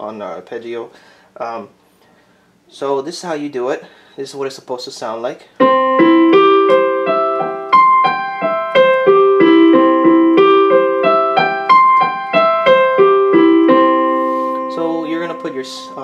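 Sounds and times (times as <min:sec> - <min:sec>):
digital piano arpeggio: 0:05.6 - 0:16.0.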